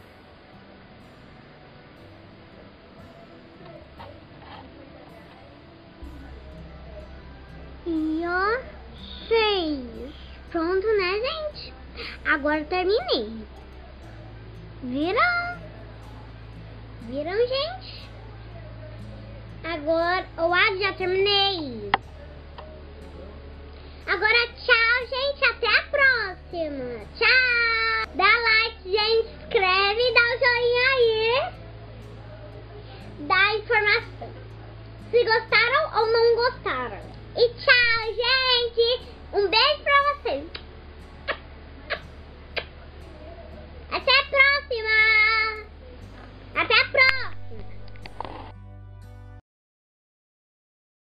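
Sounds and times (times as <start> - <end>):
steady low hum: 0.0 - 48.9.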